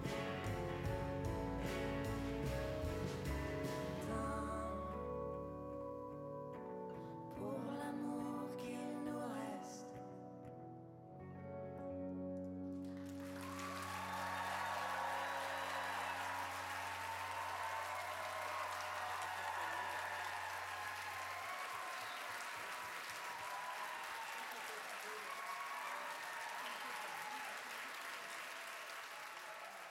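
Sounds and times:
audience applauding: 12.8 - 29.9.

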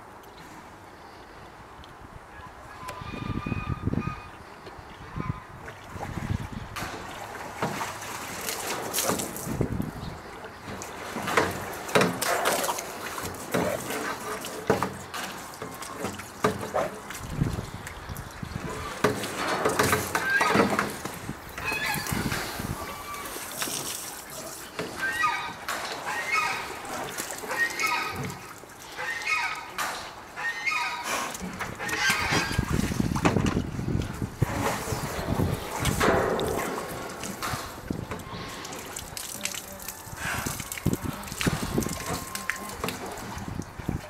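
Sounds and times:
water sloshing in metal tub: 4.5 - 44.0.

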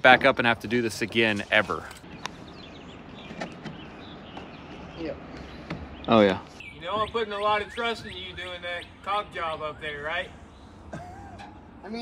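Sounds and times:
faint bird chirps: 2.1 - 11.5.

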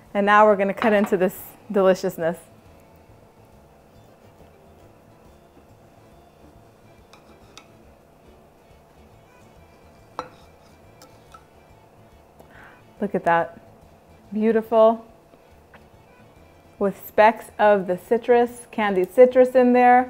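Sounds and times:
faint background music: 0.0 - 20.0
knife clinking on ceramic: 10.2 - 11.5.

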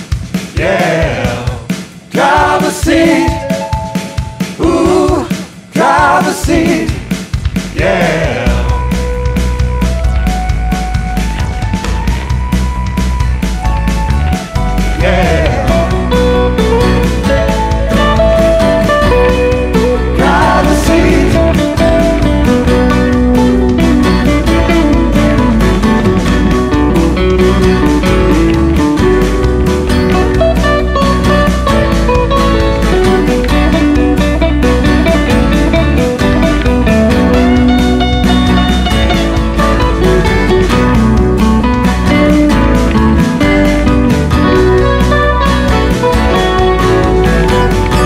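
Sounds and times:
acoustic guitars strumming: 0.0 - 48.0
piano: 2.9 - 5.5, 8.6 - 48.0.

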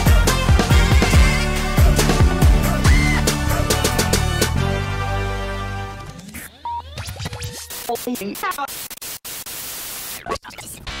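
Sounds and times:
outro music: 0.0 - 6.4
static hiss: 7.7 - 10.3.

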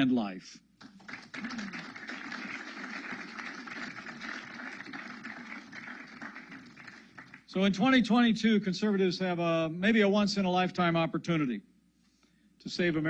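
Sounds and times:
audience applauding: 0.8 - 7.5.

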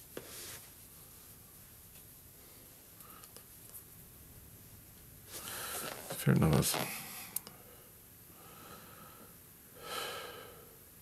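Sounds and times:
man breathing: 6.9 - 10.8.

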